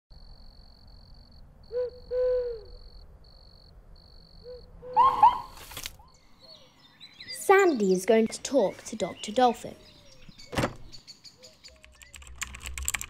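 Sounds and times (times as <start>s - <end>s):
owl hooting: 1.7s - 2.9s, 4.4s - 5.7s
higher calls: 4.4s - 5.7s.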